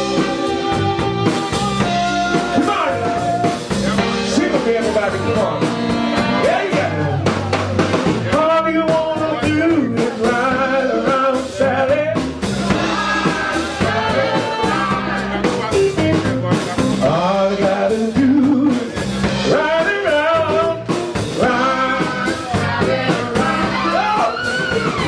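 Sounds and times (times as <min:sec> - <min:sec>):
drum kit beat: 0:00.0 - 0:25.0
electric bass: 0:00.0 - 0:25.0
electric guitar: 0:00.0 - 0:25.0
male singer: 0:02.3 - 0:05.7, 0:06.4 - 0:07.4, 0:08.2 - 0:25.0.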